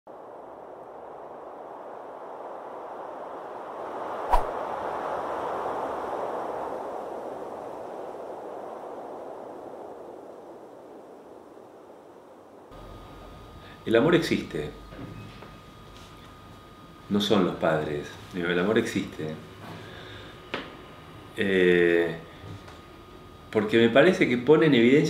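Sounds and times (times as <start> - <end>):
soft airy whoosh: 2.3 - 6.8.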